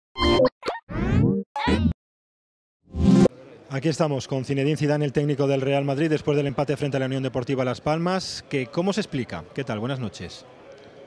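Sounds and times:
cartoon sound effects: 0:00.2 - 0:01.9.

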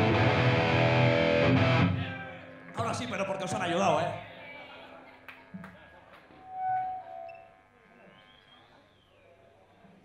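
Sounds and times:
faint gliding whistle-like tone: 0:06.5 - 0:09.3.

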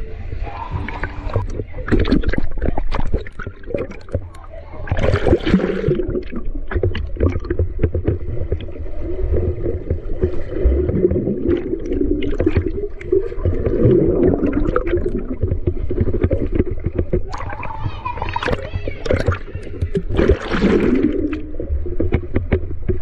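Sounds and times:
muffled underwater churning and bubbling: 0:00.0 - 0:23.0
water splashing: 0:00.4 - 0:23.0.

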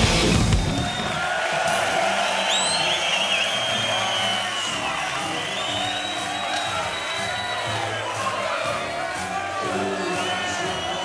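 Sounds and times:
crowd cheering: 0:00.0 - 0:11.0
rising whistles: 0:00.7 - 0:01.3, 0:02.2 - 0:08.3.

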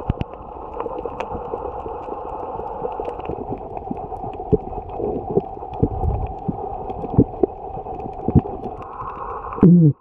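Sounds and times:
muffled underwater hiss: 0:00.0 - 0:10.0.

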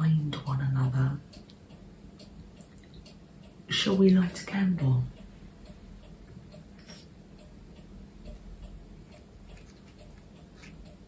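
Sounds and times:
faint ticking: 0:00.0 - 0:11.0.

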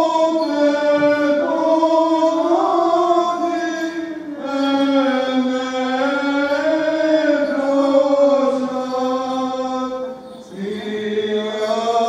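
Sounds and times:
unaccompanied voices chanting: 0:00.0 - 0:12.0.

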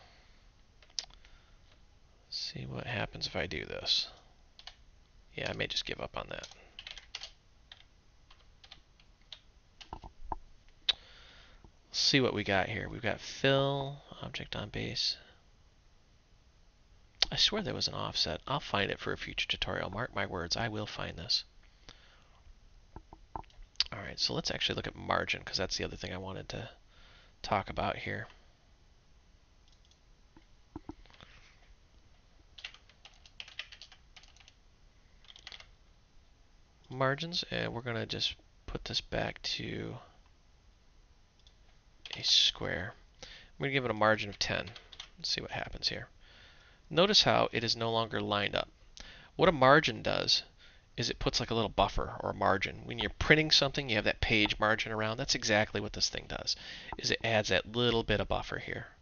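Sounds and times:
keyboard typing: 0:06.4 - 0:10.4, 0:32.6 - 0:34.6, 0:35.2 - 0:35.7, 0:44.7 - 0:45.2.

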